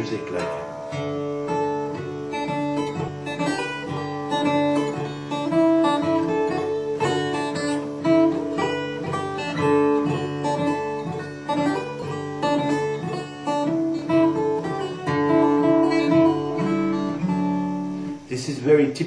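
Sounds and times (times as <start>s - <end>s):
fingerstyle acoustic guitar: 0.0s - 18.3s.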